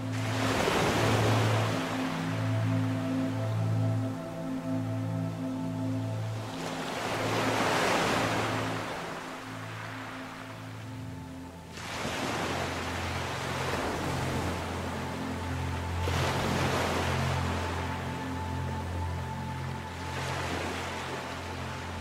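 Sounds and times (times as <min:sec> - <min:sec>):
ocean waves washing: 0:00.0 - 0:22.0
soft ambient music: 0:00.0 - 0:22.0.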